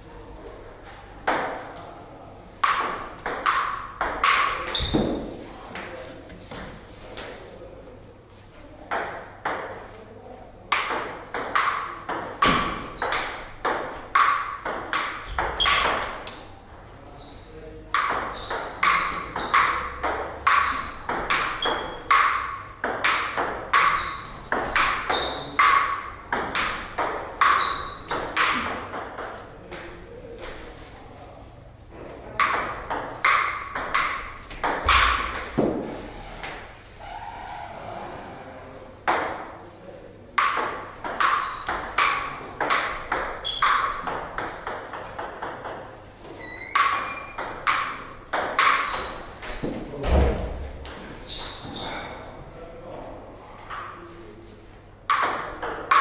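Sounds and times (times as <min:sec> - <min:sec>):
table tennis ball clicking: 0:46.6 - 0:49.6.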